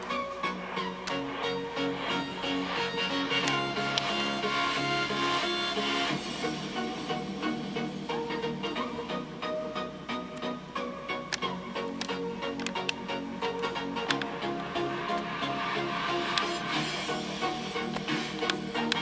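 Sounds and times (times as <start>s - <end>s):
instrumental background music: 0.0s - 19.0s.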